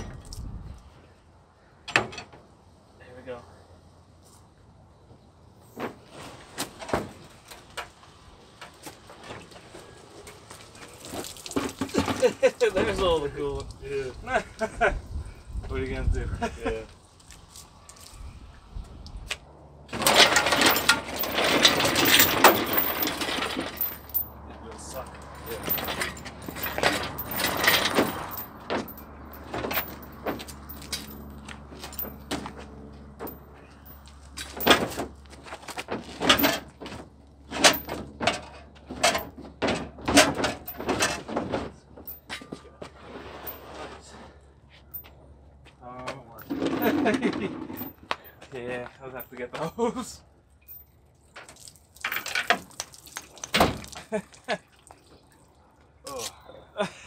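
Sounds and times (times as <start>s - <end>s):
metal clanks and knocks: 1.8s - 2.4s, 19.9s - 24.4s, 25.4s - 42.6s.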